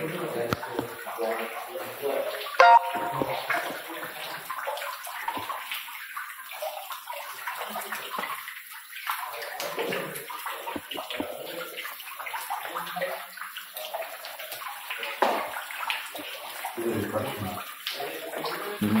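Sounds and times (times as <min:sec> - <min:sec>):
water splashing into tank: 0:00.0 - 0:19.0.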